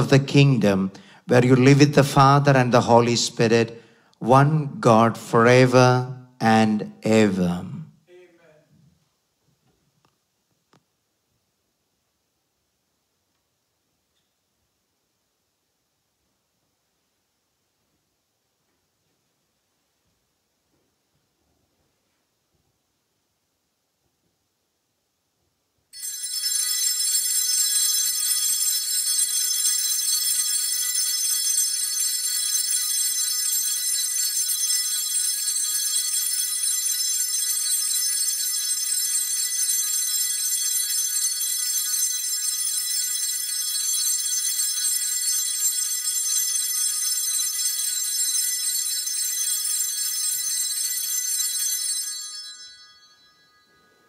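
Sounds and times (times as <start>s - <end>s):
altar bells ringing: 0.0s - 4.0s, 25.9s - 54.0s.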